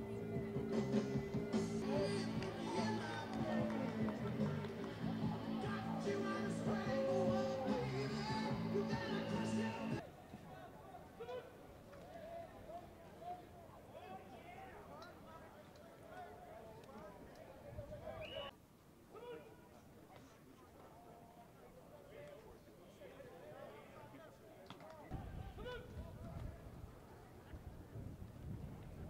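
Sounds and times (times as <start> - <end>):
distant shouting voices: 0.0 - 10.1.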